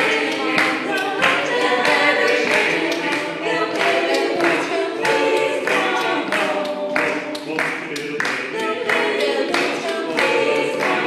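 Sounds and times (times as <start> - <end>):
vocal group singing unaccompanied: 0.0 - 11.0.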